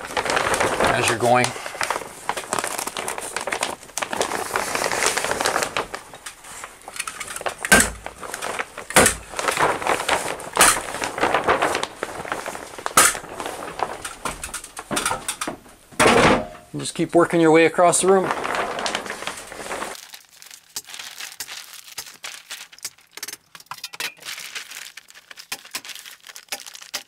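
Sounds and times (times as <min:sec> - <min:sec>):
plastic sheeting crinkling: 0:00.0 - 0:16.0, 0:16.7 - 0:27.0.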